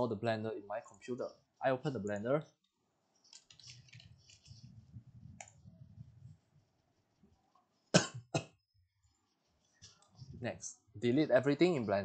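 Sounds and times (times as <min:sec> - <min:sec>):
computer keyboard and mouse clicks: 0:02.6 - 0:04.7, 0:05.3 - 0:05.7.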